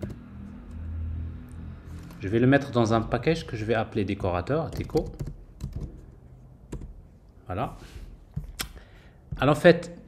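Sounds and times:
computer keyboard typing: 4.7 - 6.0, 6.7 - 7.0.

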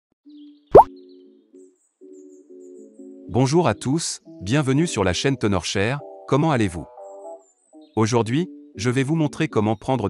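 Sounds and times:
soft sustained music: 0.3 - 10.0.

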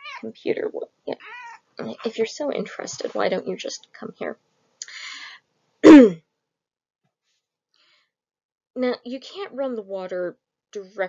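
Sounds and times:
breathy hiss: 4.8 - 5.4
woman clearing throat: 5.8 - 6.2.

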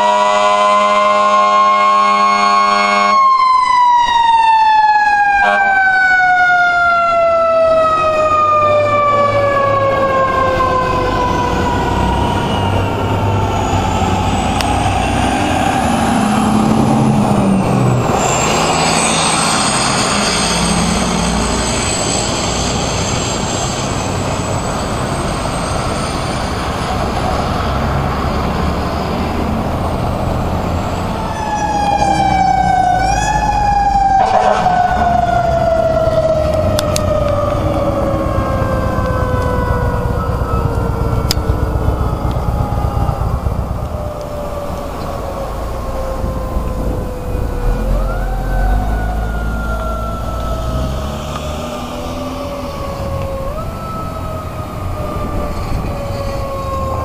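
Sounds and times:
low horn blast: 0.0 - 3.4, 5.4 - 6.1, 31.2 - 56.8
distant sirens rising and falling: 0.0 - 57.0
fire truck siren: 0.0 - 57.0
heavy truck engine: 0.0 - 57.0.

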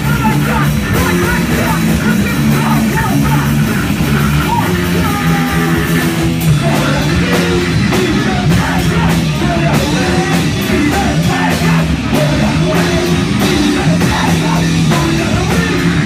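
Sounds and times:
bass guitar: 0.0 - 16.0
distorted electric guitar: 0.0 - 16.0
shouted vocals: 0.0 - 16.0.

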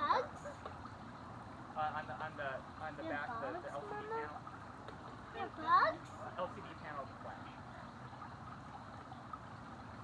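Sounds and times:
creek water trickling: 0.0 - 10.0.

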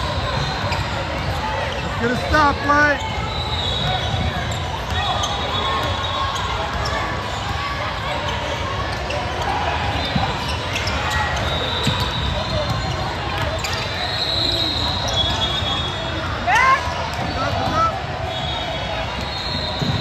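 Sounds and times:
crowd murmur in hall: 0.0 - 20.0.

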